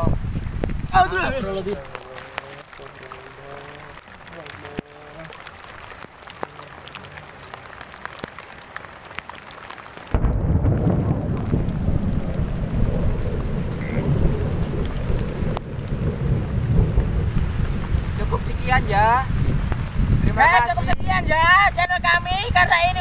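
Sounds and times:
thunder rumble: 0.0s - 7.3s, 10.0s - 23.0s
heavy rain: 0.0s - 23.0s
raindrop ticks: 0.0s - 23.0s.

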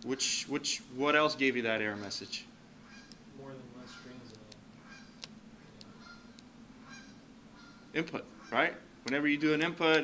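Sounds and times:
steady low hum: 0.0s - 10.0s
distant student voices: 1.8s - 8.8s
sharp clicks: 4.3s - 6.5s, 9.0s - 10.0s.

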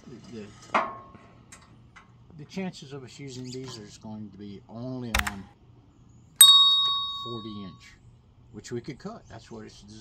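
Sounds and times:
metal clank with ringing: 6.4s - 7.7s.

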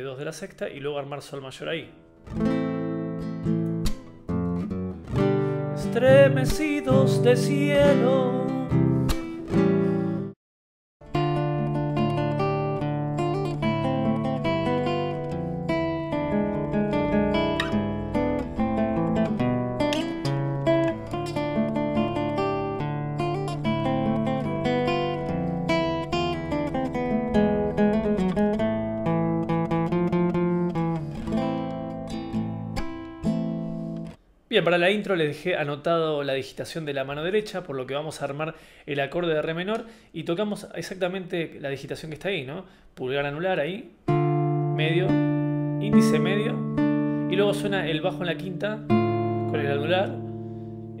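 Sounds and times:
classical guitar fingerstyle: 2.0s - 10.3s, 11.0s - 34.2s, 44.0s - 51.0s.

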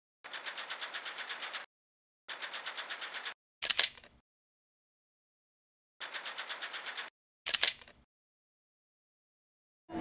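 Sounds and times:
rapid clicks: 0.3s - 1.7s, 6.0s - 8.0s.

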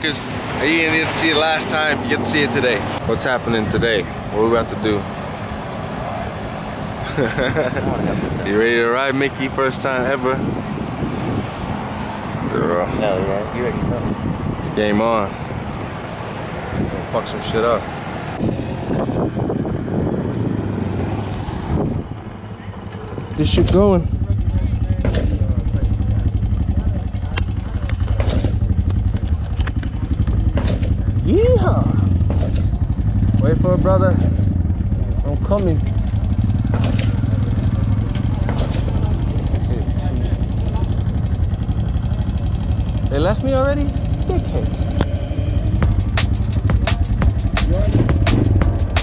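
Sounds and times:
atv engine running: 1.4s - 49.0s.

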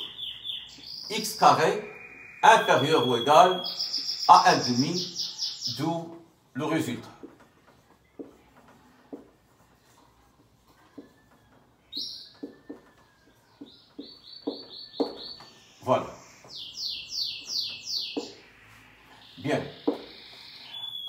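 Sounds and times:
marker writing on a whiteboard: 6.0s - 15.5s.

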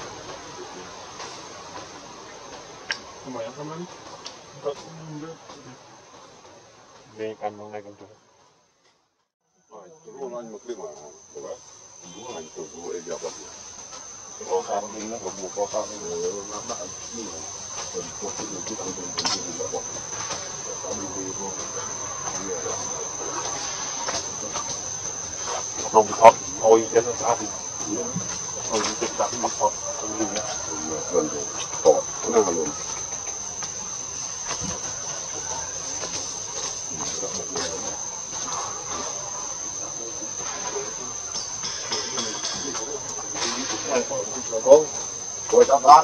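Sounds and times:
insects droning: 0.0s - 46.0s
faint voices talking: 14.4s - 46.0s.

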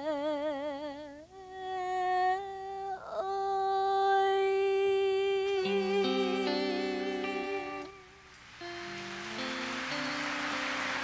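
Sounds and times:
woman singing long note: 0.0s - 7.9s
soft musical accompaniment: 4.5s - 11.0s.

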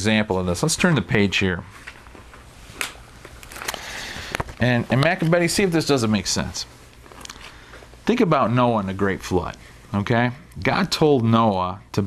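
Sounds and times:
paper pages turning: 1.8s - 6.3s
sharp paper crackle: 2.2s - 4.7s.

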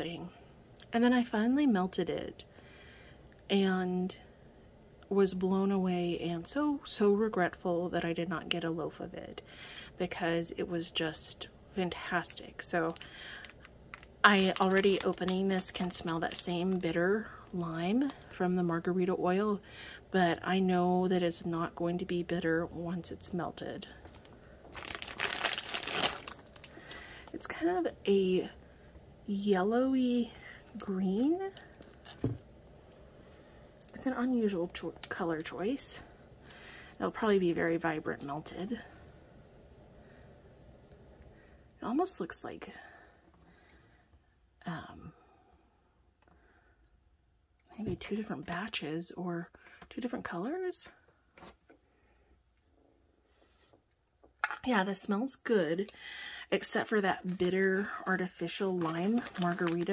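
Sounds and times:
plastic wrap crinkling: 12.2s - 18.3s, 24.0s - 27.6s, 56.9s - 59.9s.

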